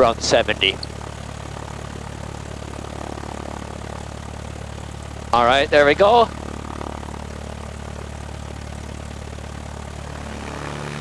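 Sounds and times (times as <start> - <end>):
airplane engine and propeller drone: 0.0 - 11.0.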